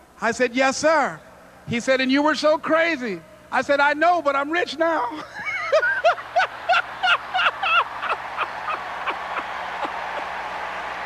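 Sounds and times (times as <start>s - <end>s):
man laughing heartily: 5.2s - 10.4s.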